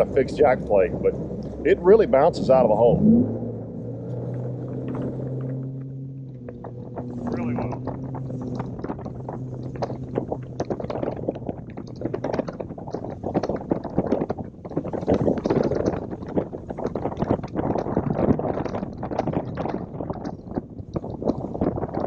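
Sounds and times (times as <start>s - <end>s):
boat running over choppy water: 0.0s - 22.0s
water slapping against hull: 0.0s - 22.0s
wind buffeting microphone: 0.0s - 22.0s.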